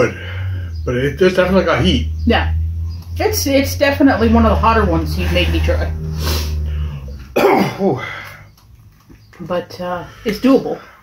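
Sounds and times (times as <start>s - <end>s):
man coughing: 7.4s - 8.2s.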